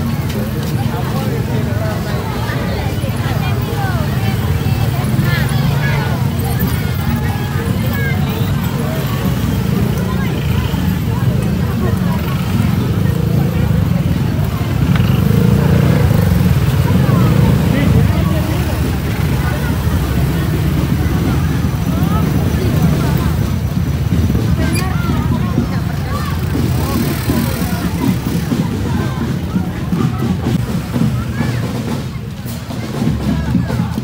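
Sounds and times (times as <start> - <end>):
crowd chatter: 0.0 - 34.0
scooter engines running slowly: 0.0 - 34.0.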